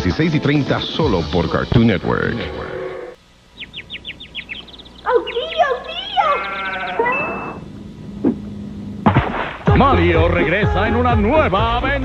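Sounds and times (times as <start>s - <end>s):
brief high steady tone: 7.0s - 7.6s.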